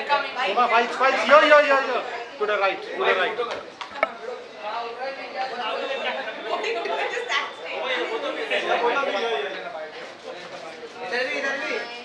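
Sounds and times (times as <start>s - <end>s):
chatter of several voices: 0.0s - 12.0s.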